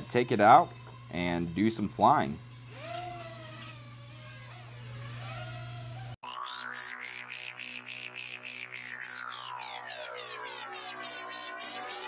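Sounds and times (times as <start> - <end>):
drone motors whining: 0.0 - 12.0
electronic music with beat: 6.2 - 12.0.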